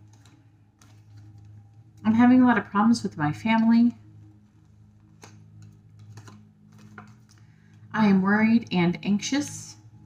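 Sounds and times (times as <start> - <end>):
paper cards tapping: 0.0 - 2.0, 4.6 - 7.5
steady low hum: 0.0 - 10.0.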